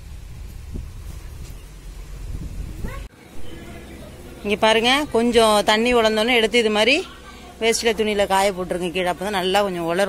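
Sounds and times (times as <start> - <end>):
wind rumbling on microphone: 0.0 - 3.1.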